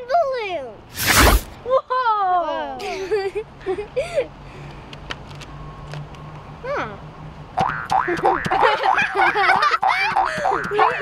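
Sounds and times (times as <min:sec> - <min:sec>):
children laughing: 0:01.6 - 0:04.3, 0:08.0 - 0:11.0.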